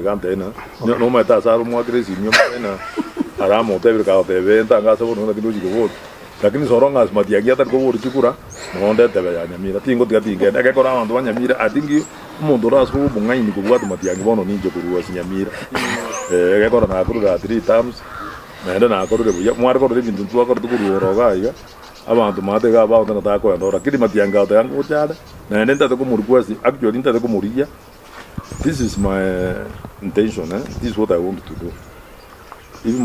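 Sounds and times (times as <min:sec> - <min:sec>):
man speaking: 0:00.0 - 0:18.0
man talking: 0:00.0 - 0:18.0, 0:18.6 - 0:27.7, 0:28.5 - 0:31.8.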